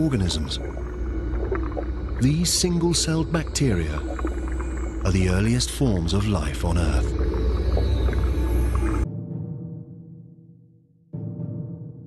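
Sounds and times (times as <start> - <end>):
faint sustained drone: 0.0 - 9.1
deep underwater-style rumble: 0.0 - 10.0.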